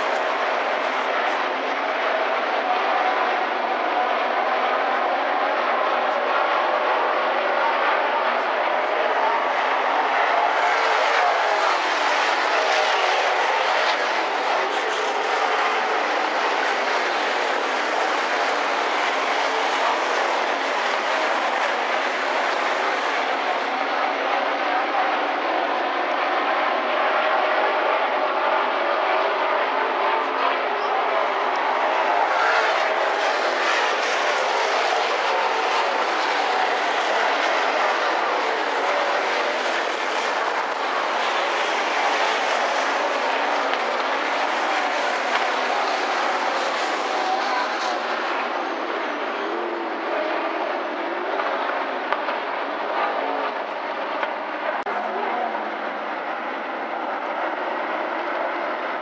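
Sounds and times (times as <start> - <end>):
race car engines running hard: 0.0 - 59.0.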